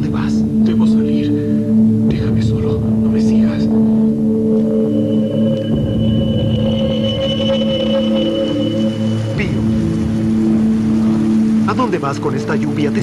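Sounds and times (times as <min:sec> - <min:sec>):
droning held orchestral chords: 0:00.0 - 0:12.8
thin high held note: 0:04.2 - 0:10.4.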